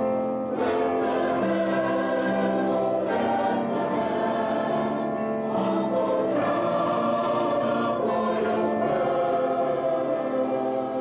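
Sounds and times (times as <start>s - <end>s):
mixed choir singing: 0.3s - 11.0s.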